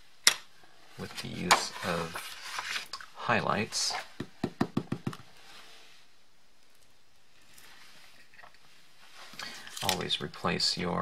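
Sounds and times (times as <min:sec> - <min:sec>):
faint room hiss: 0:00.0 - 0:11.0
acrylic block tapping on paper: 0:04.2 - 0:05.2.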